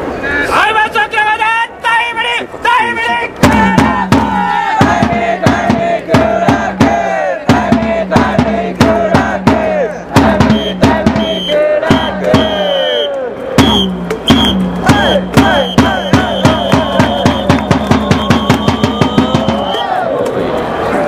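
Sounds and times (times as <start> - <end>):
crowd chanting and shouting: 0.0 - 21.0
drum beats: 3.4 - 20.0
high steady tone: 10.4 - 19.7.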